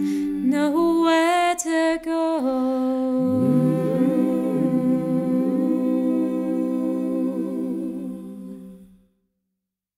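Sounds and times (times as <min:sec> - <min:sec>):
voices humming a chord: 0:03.2 - 0:08.7.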